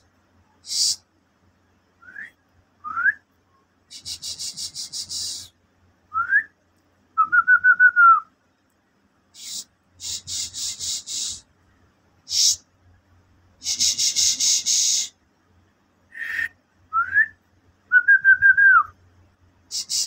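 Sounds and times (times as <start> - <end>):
hissing shh sounds: 0.6 - 1.1, 3.9 - 5.6, 9.3 - 11.5, 12.3 - 12.7, 13.6 - 15.2, 19.7 - 20.0
person whistling: 16.1 - 17.4.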